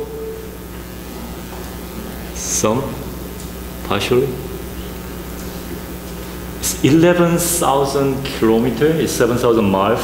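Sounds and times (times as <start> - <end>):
low hum: 0.0 - 8.8.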